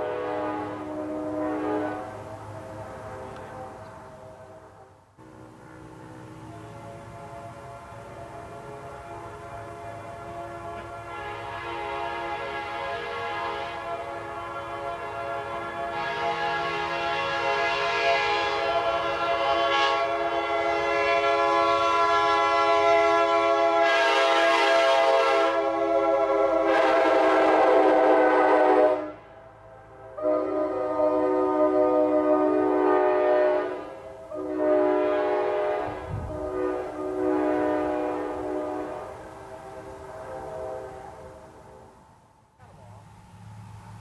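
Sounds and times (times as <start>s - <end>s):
locomotive air horn chord: 0.0s - 42.2s.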